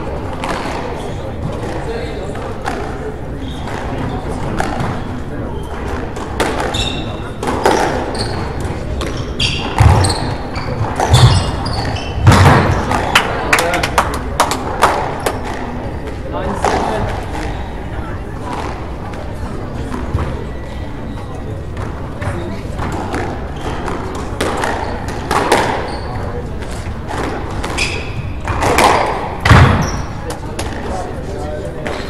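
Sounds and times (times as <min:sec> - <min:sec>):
squash ball hitting rackets and walls: 0:00.0 - 0:13.8, 0:14.4 - 0:17.8, 0:21.6 - 0:31.1.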